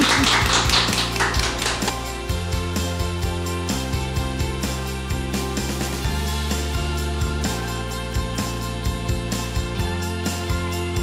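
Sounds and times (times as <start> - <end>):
woman laughing: 0.0 - 0.6
hands clapping rapidly: 0.0 - 2.3
background music: 0.0 - 11.0.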